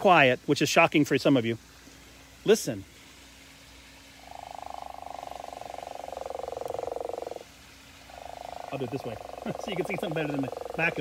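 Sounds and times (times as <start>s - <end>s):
frog call through phone speaker: 4.2s - 7.4s, 8.1s - 11.0s.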